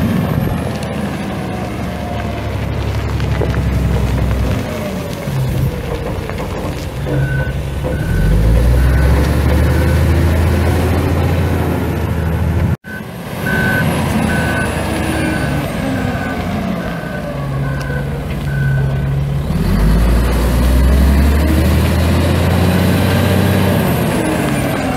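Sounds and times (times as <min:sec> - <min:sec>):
diesel wheel loader engine: 0:00.0 - 0:24.9
reverse alarm beeping: 0:12.8 - 0:15.6.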